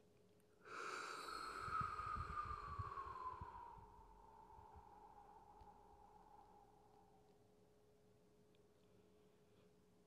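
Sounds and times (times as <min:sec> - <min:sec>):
breathy exhale with whistle: 0:00.7 - 0:06.6.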